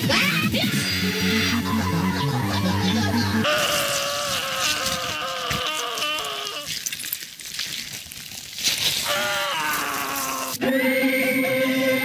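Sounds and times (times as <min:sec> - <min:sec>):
music: 0:00.0 - 0:03.5, 0:10.6 - 0:12.0
wavering quavering voice call: 0:00.5 - 0:06.7.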